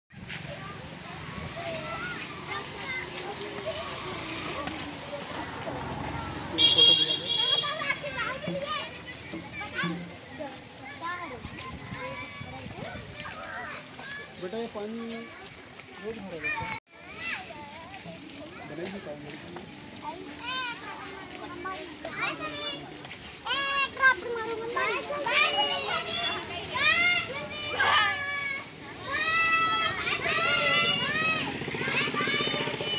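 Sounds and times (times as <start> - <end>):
children chattering and calling out: 0.1 - 32.9.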